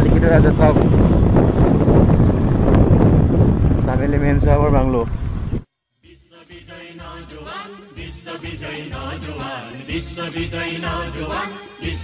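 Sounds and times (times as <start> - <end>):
wind buffeting microphone: 0.0 - 5.7.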